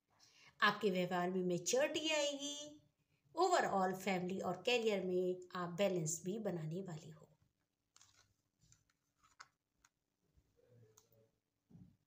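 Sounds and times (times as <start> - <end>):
cards clicking: 8.0 - 9.9.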